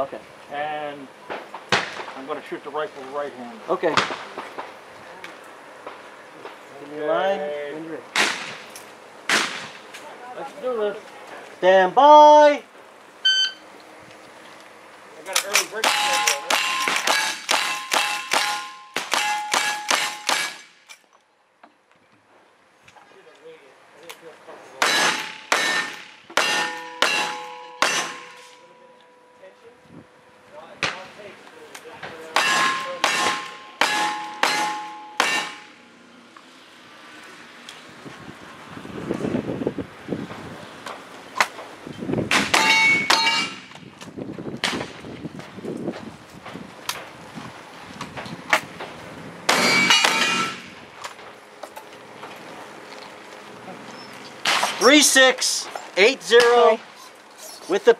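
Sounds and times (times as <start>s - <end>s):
steel targets clanging: 15.2s - 21.1s, 24.8s - 28.9s, 32.3s - 35.8s, 42.3s - 43.8s, 49.5s - 50.8s, 54.4s - 56.8s.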